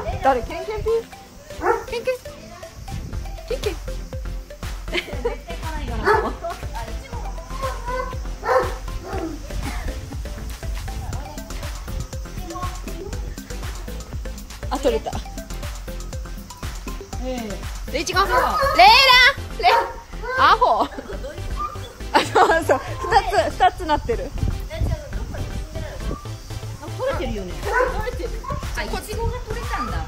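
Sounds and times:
high-pitched voices calling out: 0.0s - 24.0s, 24.6s - 30.0s
background music: 0.0s - 30.0s
dog barking: 1.6s - 2.0s, 6.0s - 6.3s, 7.6s - 9.4s, 18.2s - 20.1s, 27.6s - 28.6s.

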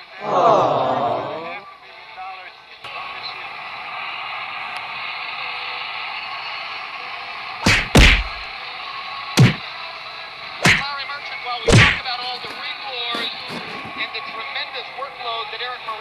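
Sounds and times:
punch hits: 7.6s - 8.4s, 9.4s - 9.6s, 10.6s - 10.9s, 11.7s - 12.0s.

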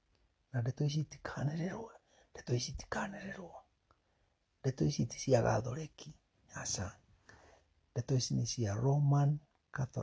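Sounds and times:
man talking: 0.5s - 3.7s, 4.6s - 7.0s, 7.9s - 10.0s.

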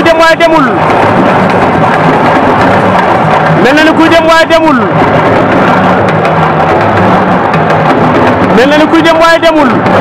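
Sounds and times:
dense din: 0.0s - 10.0s
drumming with wooden clack: 0.0s - 10.0s.

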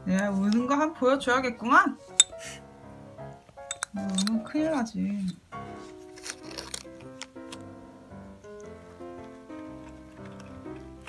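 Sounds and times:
soft background music: 0.0s - 11.0s
ceramic mugs clinking: 3.6s - 5.4s.

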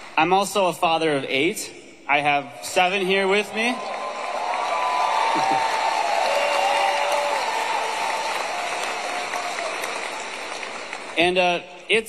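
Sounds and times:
audience applauding: 2.8s - 11.4s.

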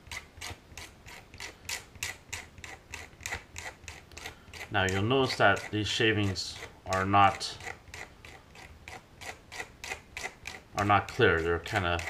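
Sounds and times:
hobby knife scraping plastic: 0.0s - 12.0s.

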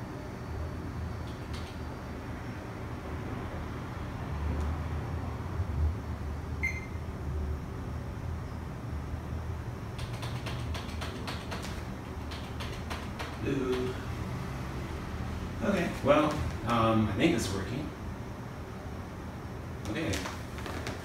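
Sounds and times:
computer hum: 0.0s - 21.0s
short high beep: 6.6s - 7.0s
keyboard key clicks: 10.0s - 13.9s.

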